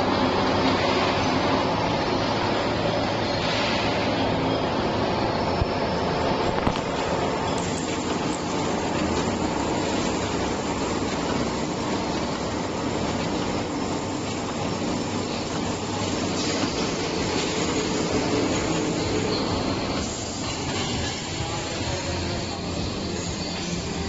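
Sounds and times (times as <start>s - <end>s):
packaging machine running: 0.0s - 24.0s.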